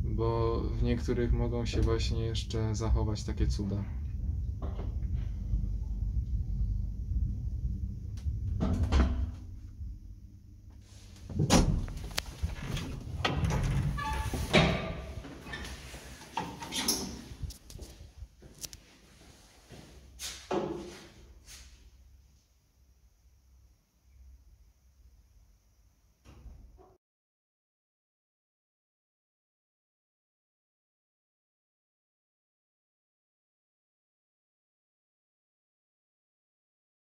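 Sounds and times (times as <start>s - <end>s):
elevator running with rumble: 0.0s - 18.4s
door thumping shut: 11.3s - 12.1s
door knocks and clatter: 11.3s - 15.2s.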